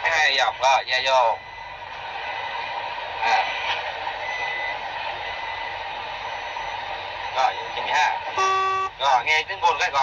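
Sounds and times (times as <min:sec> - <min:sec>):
truck cab noise hissing: 0:01.7 - 0:09.4.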